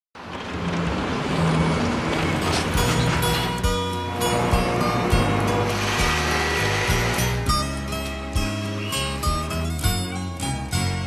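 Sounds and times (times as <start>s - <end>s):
road traffic with car engines: 0.2s - 11.0s.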